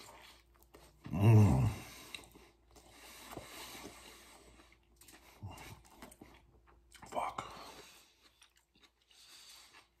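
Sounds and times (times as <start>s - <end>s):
person chewing: 0.0s - 10.0s.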